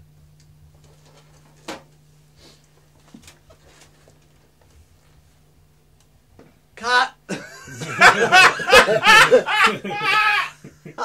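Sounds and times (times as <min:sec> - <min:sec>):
steady low hum: 0:00.0 - 0:11.0
man laughing softly: 0:07.3 - 0:11.0.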